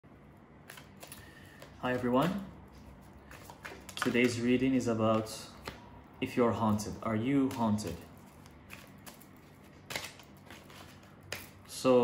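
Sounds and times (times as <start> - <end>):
cards being shuffled: 0.6 - 5.9, 6.7 - 11.8.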